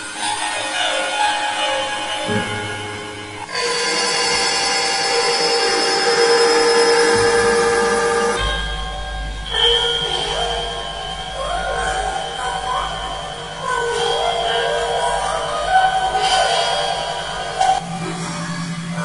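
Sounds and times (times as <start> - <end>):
wavering gliding tones: 0.0 - 19.0
deep low drone: 2.3 - 19.0
electronic sustained tones: 3.4 - 19.0.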